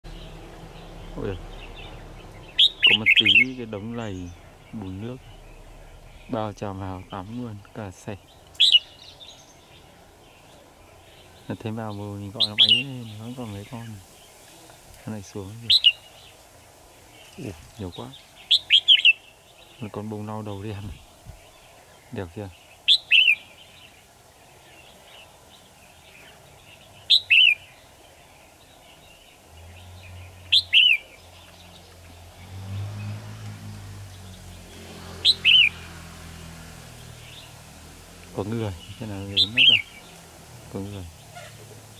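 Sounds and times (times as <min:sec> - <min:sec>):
motorbike engine hum: 0:00.0 - 0:13.7, 0:29.4 - 0:41.9
faint high bird chirps: 0:00.0 - 0:14.4, 0:15.1 - 0:16.4, 0:17.1 - 0:29.4, 0:30.0 - 0:32.2, 0:38.7 - 0:40.2
bird call: 0:00.0 - 0:16.4, 0:17.1 - 0:29.4, 0:30.1 - 0:32.2, 0:35.2 - 0:35.9, 0:38.7 - 0:40.2, 0:40.8 - 0:41.8
bird two-note call: 0:02.5 - 0:04.3.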